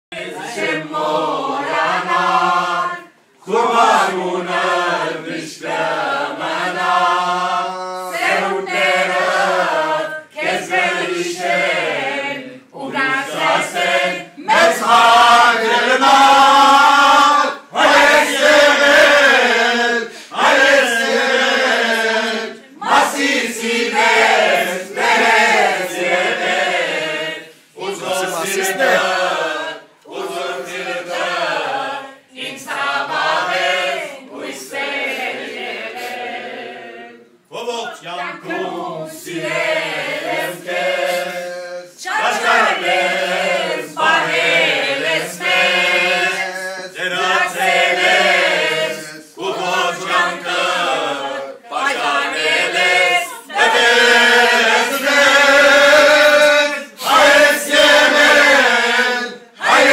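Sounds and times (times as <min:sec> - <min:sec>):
group of voices singing: 0:00.1 - 0:59.9.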